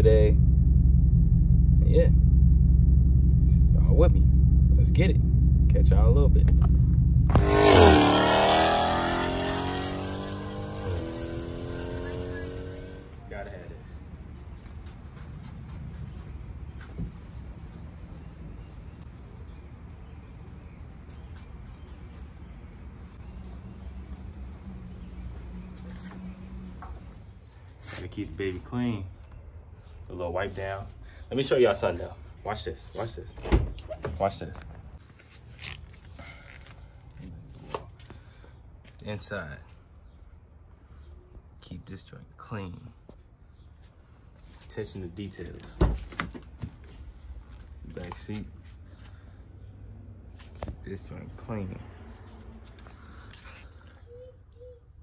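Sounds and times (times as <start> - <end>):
low steady rumble: 0.0 - 14.5
car engine and exhaust: 0.0 - 33.2, 47.4 - 54.1.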